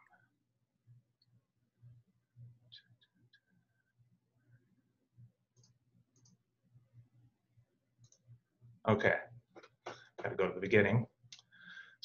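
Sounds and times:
computer mouse clicks: 0:05.5 - 0:06.4, 0:08.0 - 0:08.3.

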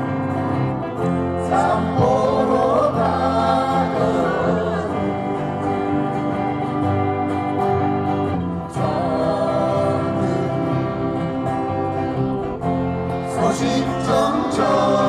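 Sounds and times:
acoustic guitar: 0:00.0 - 0:15.0
man singing into a microphone: 0:08.7 - 0:11.0, 0:13.2 - 0:15.0.

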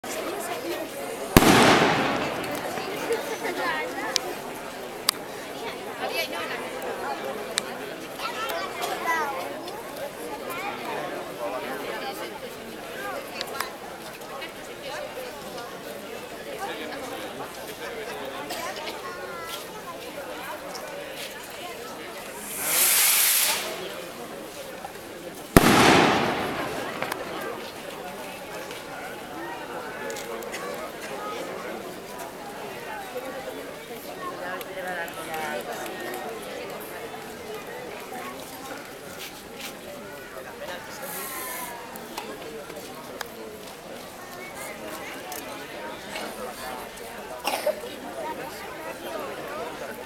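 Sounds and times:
crowd murmur: 0:00.0 - 0:50.0
firework rocket hissing launch: 0:01.4 - 0:03.2, 0:22.3 - 0:24.2, 0:25.6 - 0:27.8
firework bang echoing: 0:01.4 - 0:03.4, 0:22.4 - 0:24.0, 0:25.6 - 0:28.0.

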